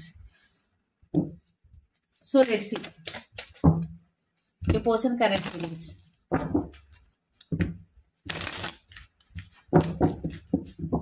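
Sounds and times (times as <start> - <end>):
cards being shuffled: 1.8 - 3.7, 8.2 - 10.8.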